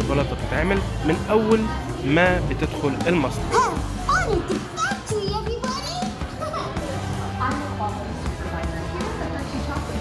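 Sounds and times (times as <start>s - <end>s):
background music: 0.0s - 10.0s
high-pitched childlike voices: 3.6s - 6.8s.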